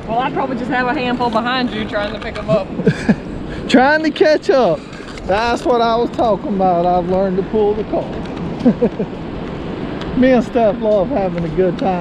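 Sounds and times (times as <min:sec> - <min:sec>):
wind buffeting microphone: 0:00.0 - 0:12.0
burst of laughter: 0:02.8 - 0:03.4, 0:08.6 - 0:09.1.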